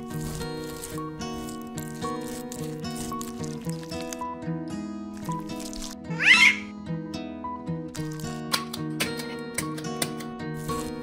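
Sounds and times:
plucked background music: 0:00.0 - 0:11.0
short high cry: 0:06.1 - 0:06.7.

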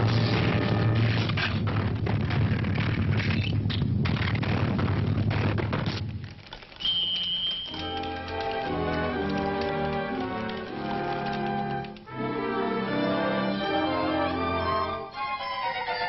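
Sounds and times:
rumbling crash: 0:00.0 - 0:06.4
orchestral music: 0:07.7 - 0:16.0.

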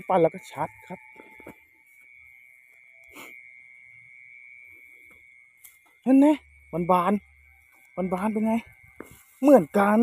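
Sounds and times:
high-pitched insect drone: 0:00.0 - 0:10.0
footsteps rustling through grass: 0:08.8 - 0:10.0.

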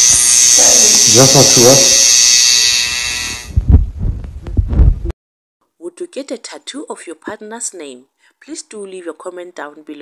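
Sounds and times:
tattoo machine buzzing: 0:00.0 - 0:03.8
low thumps: 0:03.5 - 0:05.1.

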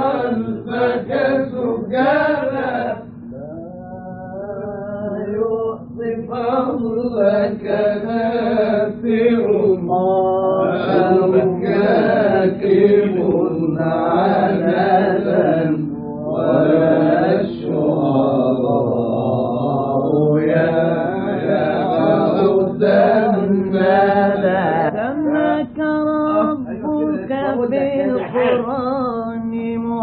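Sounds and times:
man singing religious chant: 0:00.0 - 0:29.5.

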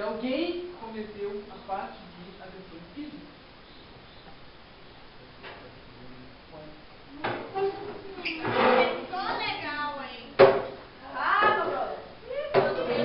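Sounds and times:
furniture knock: 0:10.4 - 0:10.8.

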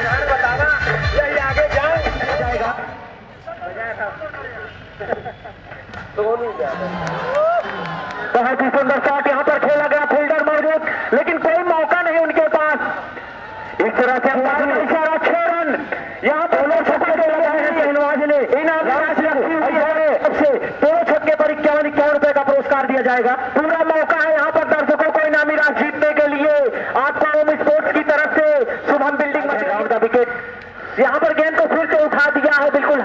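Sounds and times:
man giving cricket commentary: 0:00.0 - 0:04.8, 0:06.1 - 0:07.0, 0:08.2 - 0:13.1, 0:13.8 - 0:33.0.

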